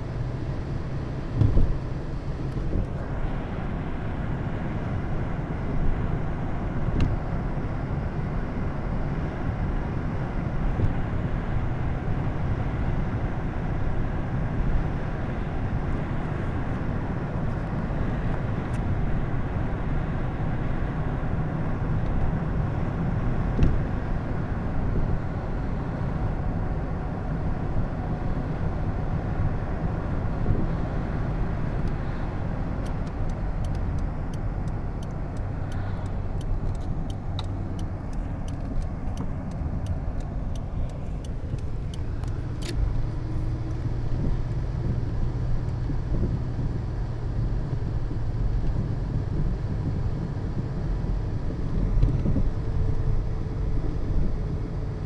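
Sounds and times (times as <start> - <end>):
car engine and tyre noise: 0.0 - 55.0.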